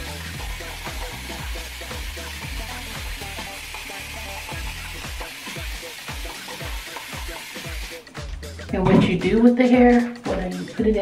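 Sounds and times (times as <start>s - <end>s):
music with deep bass beat: 0.0s - 11.0s.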